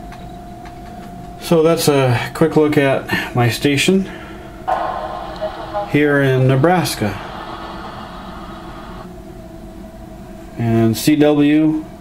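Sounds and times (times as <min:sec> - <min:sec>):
low hum: 0:04.6 - 0:09.1
hiss: 0:04.7 - 0:09.0.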